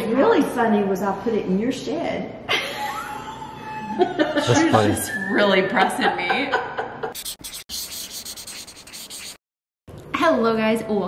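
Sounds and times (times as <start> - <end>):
dry scratchy rubbing: 7.1 - 9.4.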